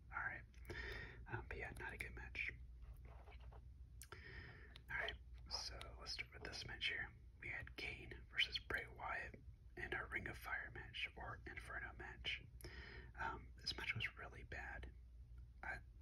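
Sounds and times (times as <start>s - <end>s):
person whispering: 0.0s - 2.6s, 4.0s - 12.5s, 13.1s - 14.9s, 15.6s - 16.0s
faint low hum: 0.0s - 16.0s.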